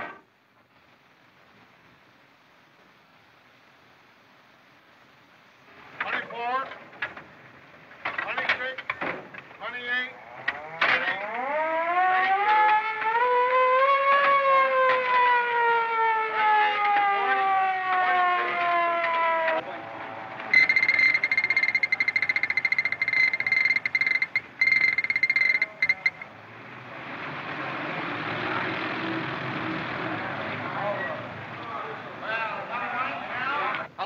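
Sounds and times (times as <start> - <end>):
siren winding down: 10.3 - 26.4
shrill fluttering high signal: 20.5 - 26.3
crowd of men murmuring: 30.0 - 33.9.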